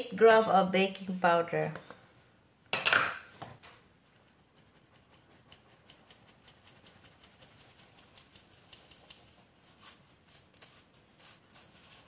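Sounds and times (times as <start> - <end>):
faint handling sounds: 7.7 - 12.0.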